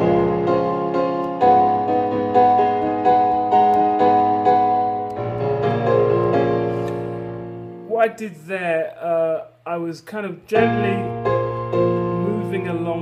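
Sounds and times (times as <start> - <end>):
piano-like keyboard chords: 0.0 - 8.3, 10.5 - 13.0.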